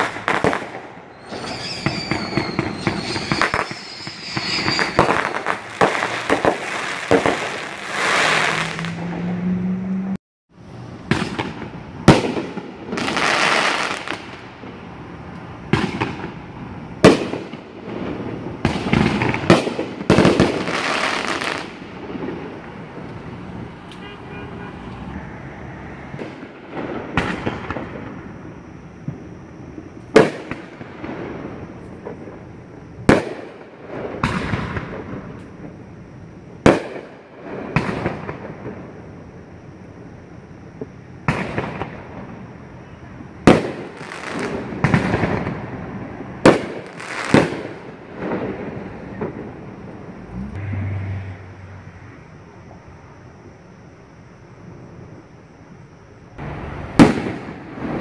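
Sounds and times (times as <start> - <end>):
firework shells bursting: 0.0 - 8.8
fireworks crackling: 0.0 - 9.0, 10.8 - 24.6, 26.0 - 35.8, 36.4 - 39.2, 41.2 - 42.4, 43.3 - 50.5, 56.4 - 58.0.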